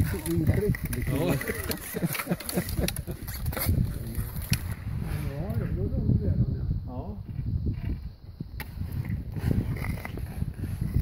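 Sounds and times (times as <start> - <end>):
people talking indistinctly: 0.0 - 7.3.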